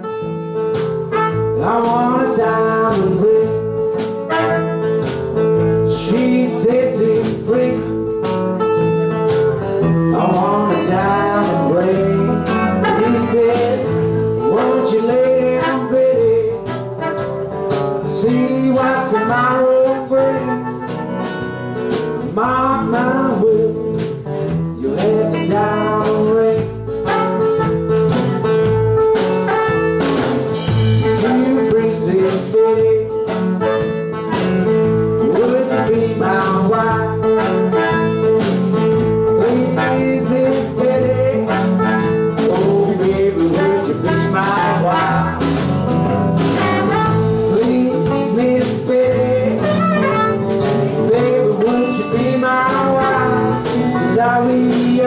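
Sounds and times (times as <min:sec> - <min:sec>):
acoustic guitar: 0:00.0 - 0:55.0
electric bass: 0:00.0 - 0:55.0
drums with cymbals: 0:00.6 - 0:55.0
man singing: 0:01.1 - 0:04.8, 0:05.8 - 0:08.4, 0:09.9 - 0:17.3, 0:17.9 - 0:21.1, 0:22.2 - 0:27.7, 0:30.9 - 0:33.5, 0:34.3 - 0:38.4, 0:39.2 - 0:45.7, 0:46.5 - 0:55.0.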